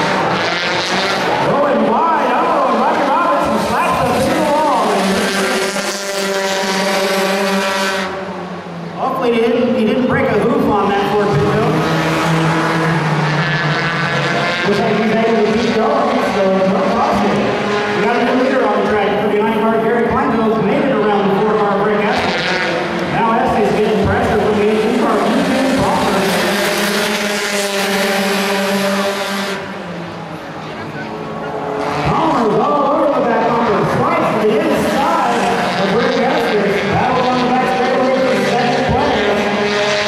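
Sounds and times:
race car engines passing: 0.0 - 40.0.

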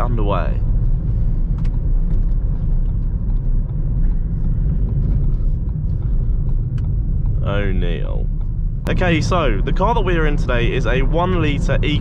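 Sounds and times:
in-cabin engine and road noise: 0.0 - 12.0.

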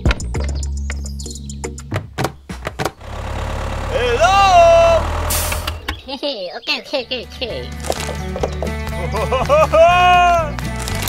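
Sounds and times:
tractor engine idling: 3.0 - 6.2
short hiss: 5.2 - 5.8.

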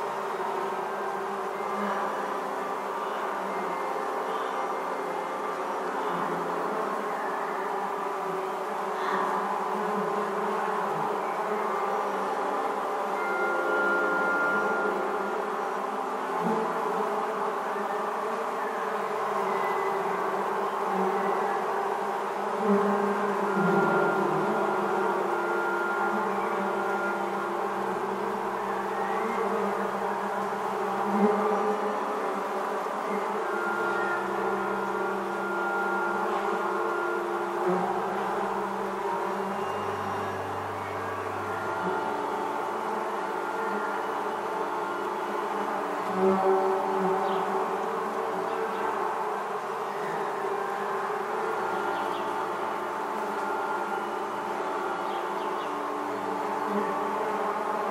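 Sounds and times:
bees buzzing in a swarm: 0.0 - 57.9.

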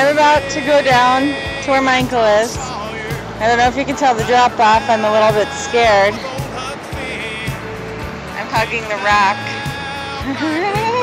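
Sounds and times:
music with steady beat: 0.0 - 11.0.

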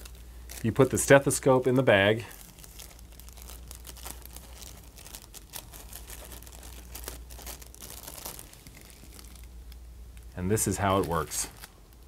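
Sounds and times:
plastic bag crinkling: 0.0 - 9.8, 10.5 - 12.0.

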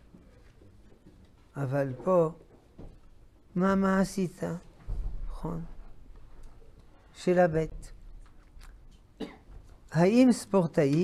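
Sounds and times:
person coughing: 9.2 - 9.6.

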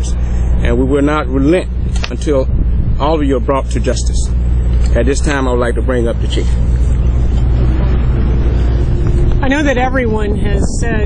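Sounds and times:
engine rumbling: 0.0 - 11.0
faint hum: 0.0 - 11.0.

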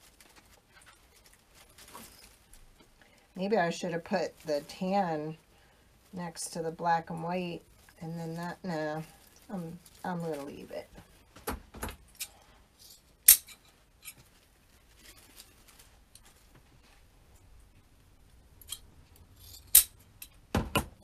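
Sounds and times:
ribbon and greenery rustling: 0.0 - 11.4, 12.8 - 19.6.

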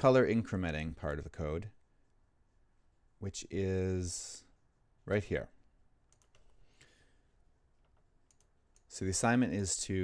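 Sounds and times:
faint computer clicks: 6.1 - 6.6, 7.8 - 9.0.

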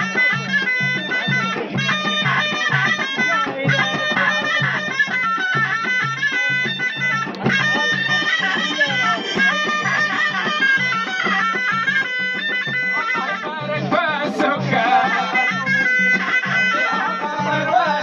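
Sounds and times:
frame-drum beats: 0.0 - 18.0
shawm playing nasal melody: 0.0 - 18.0.

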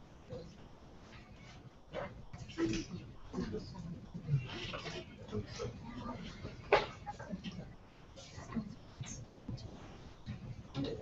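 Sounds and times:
faint indistinct voices: 0.2 - 11.0.

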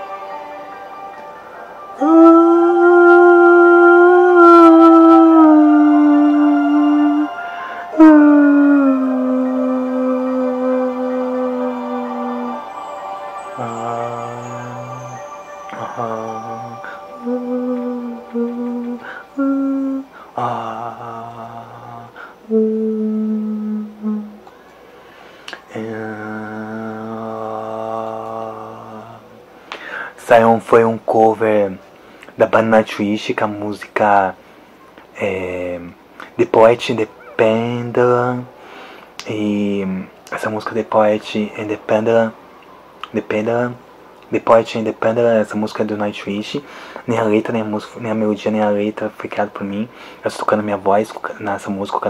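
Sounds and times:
quiet backing track: 0.0 - 29.6
man singing long note: 1.9 - 24.4, 25.7 - 29.4.

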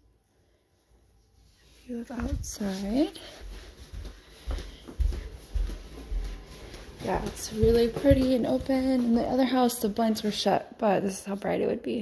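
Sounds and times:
footsteps on hardwood floor: 2.0 - 10.4.

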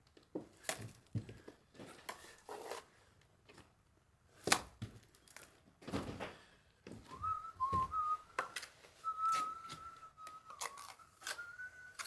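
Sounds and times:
trowel scraping mortar: 2.1 - 3.0
person whistling a slow tune: 7.1 - 12.0.

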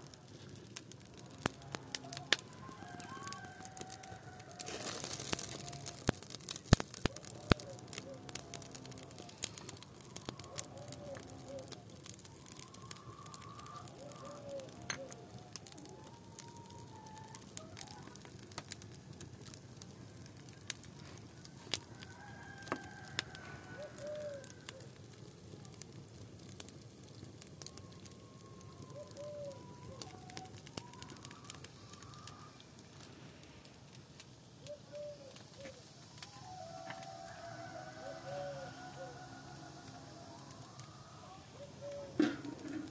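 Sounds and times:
wood fire crackling and popping: 0.0 - 42.9.

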